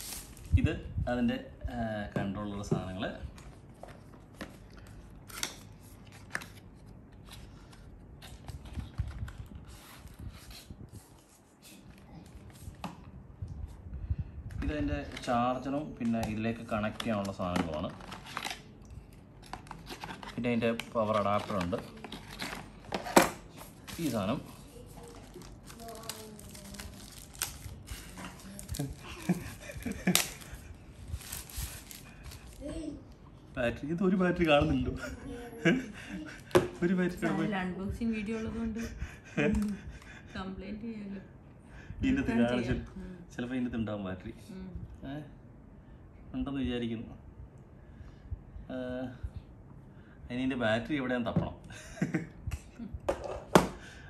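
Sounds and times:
cardboard and paper rustling: 16.0s - 18.7s, 19.4s - 32.9s.

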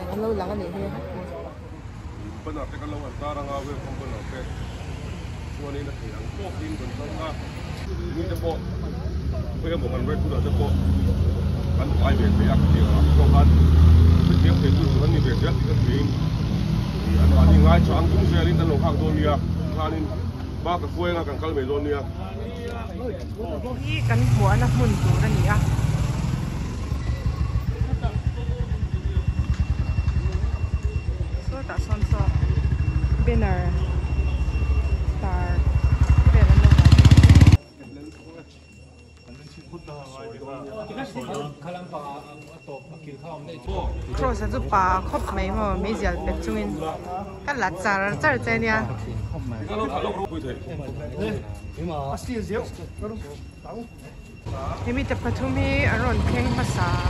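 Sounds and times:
people talking: 0.0s - 4.6s, 17.1s - 25.9s, 27.0s - 36.9s, 37.6s - 57.0s
vehicle engine humming: 0.0s - 37.6s, 54.2s - 57.0s
motorcycle engine running: 23.9s - 37.6s.

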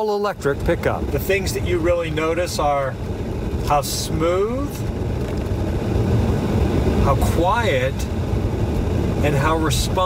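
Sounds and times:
tyre and road noise: 0.0s - 10.0s.

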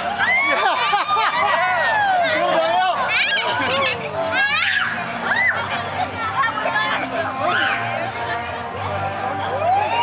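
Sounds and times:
voices shouting in play: 0.0s - 8.2s.

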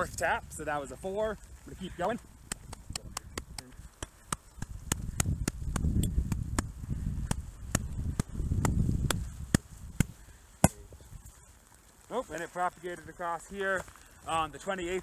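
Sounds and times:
wind rumble on microphone: 0.0s - 11.4s.

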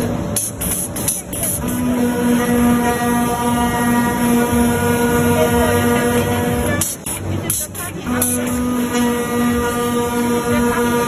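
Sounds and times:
cutting machine drone: 0.0s - 11.0s.

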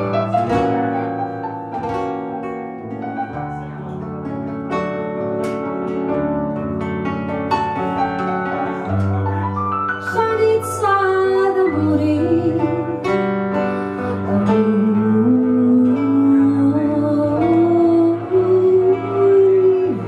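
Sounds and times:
keyboard piano playing slow melody: 0.0s - 20.0s.

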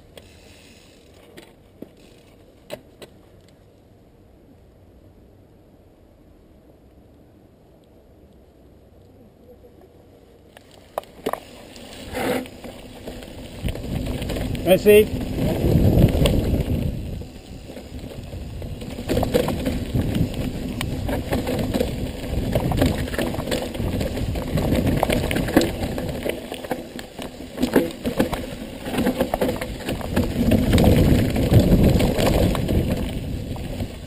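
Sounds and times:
bike rattling clicks and knocks: 0.9s - 3.6s, 10.6s - 34.0s
tyre and wind rumble: 10.7s - 34.0s.

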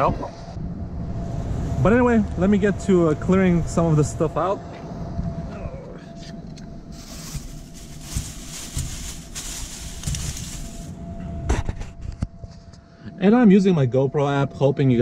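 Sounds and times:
paper bag crinkling: 6.9s - 10.9s.

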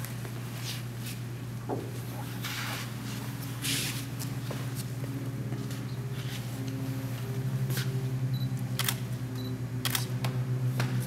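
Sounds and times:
steady low hum: 0.0s - 11.0s
camera shutter clicks: 8.8s - 9.0s, 9.8s - 10.1s.

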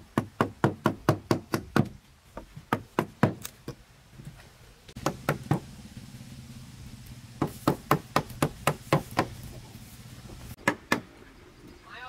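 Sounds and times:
wood chisel striking beam: 0.0s - 3.8s, 5.0s - 5.7s, 7.4s - 9.4s, 10.6s - 11.1s.

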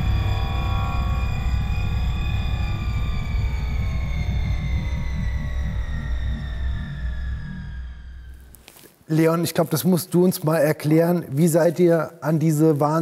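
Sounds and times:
deep throbbing drone: 0.0s - 8.7s
high held tone falling in pitch: 0.0s - 8.7s.

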